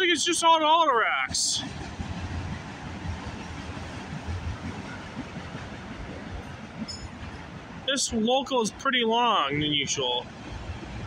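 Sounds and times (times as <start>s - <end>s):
train wheels rumbling on rails: 1.1s - 8.8s.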